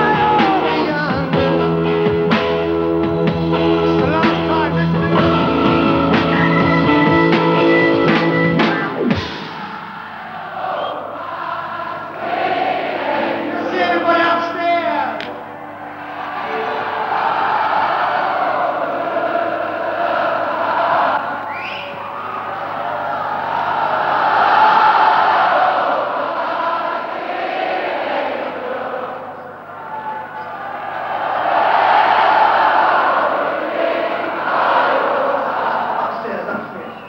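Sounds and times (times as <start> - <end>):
concert crowd cheering and chanting: 0.0 - 2.4, 3.5 - 37.0.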